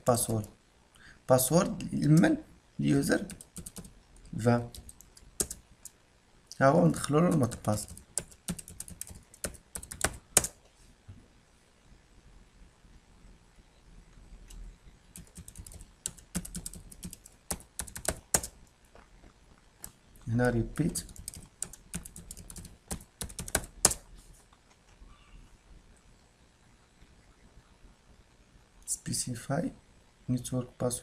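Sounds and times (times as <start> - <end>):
computer keyboard keystrokes: 3.3 - 3.9, 4.7 - 6.0, 7.3 - 10.6, 15.2 - 18.6, 20.8 - 24.0.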